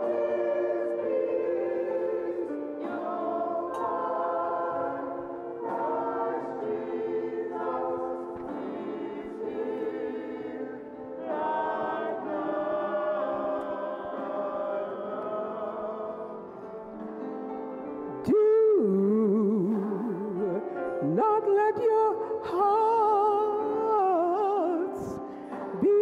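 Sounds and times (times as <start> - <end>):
church choir singing: 0.0 - 26.0.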